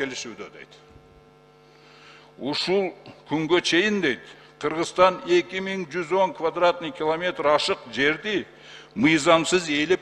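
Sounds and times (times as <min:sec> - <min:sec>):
man speaking: 0:00.0 - 0:00.8, 0:02.4 - 0:10.0
faint mains hum: 0:00.0 - 0:10.0.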